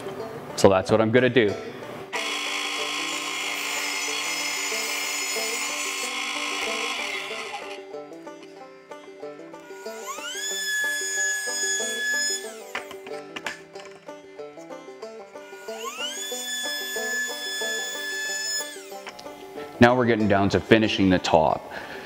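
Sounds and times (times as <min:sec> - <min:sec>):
background music: 0:00.0 - 0:22.0
table saw cutting wood: 0:02.1 - 0:08.6, 0:09.6 - 0:13.6, 0:15.4 - 0:19.5
router spinning with whine: 0:02.2 - 0:07.8, 0:09.7 - 0:13.0, 0:15.5 - 0:19.1.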